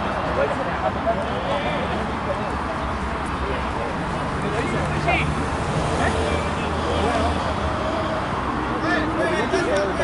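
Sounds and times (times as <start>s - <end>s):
city traffic rumble: 0.0s - 10.0s.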